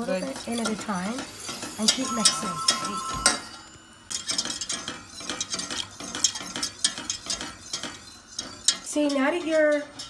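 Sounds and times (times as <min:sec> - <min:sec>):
whisk scraping metal saucepan: 0:04.1 - 0:10.0.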